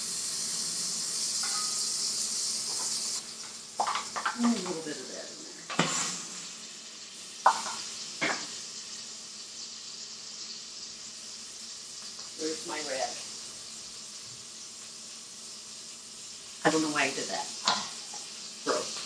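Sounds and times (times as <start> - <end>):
grease sizzling in a pot: 0.0 - 19.0.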